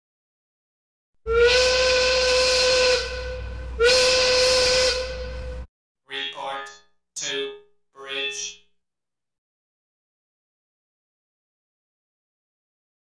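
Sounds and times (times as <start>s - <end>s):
horn blasts: 1.3s - 5.7s.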